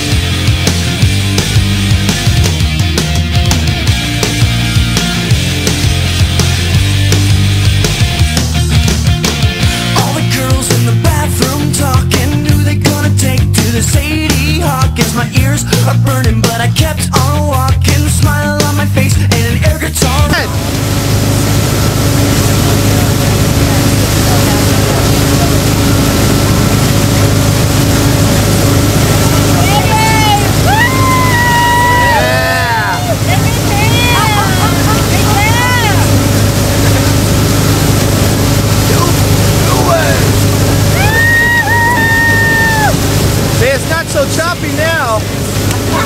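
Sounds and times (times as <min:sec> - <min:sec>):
churning wake: 0:00.0 - 0:46.0
motorboat engine humming: 0:00.0 - 0:46.0
voices calling out: 0:22.2 - 0:46.0.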